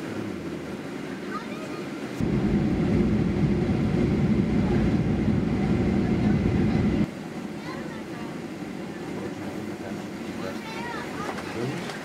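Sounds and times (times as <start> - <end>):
jet airliner low rumble: 0.5 - 11.0.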